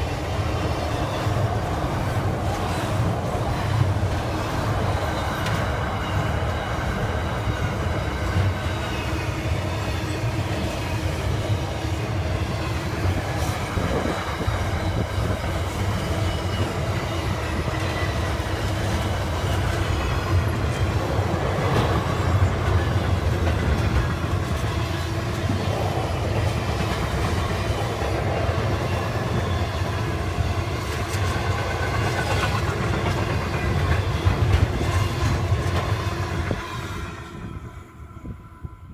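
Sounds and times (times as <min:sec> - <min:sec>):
wheels clicking on track: 0:00.0 - 0:36.6
freight wagons rumbling on rails: 0:00.0 - 0:38.9.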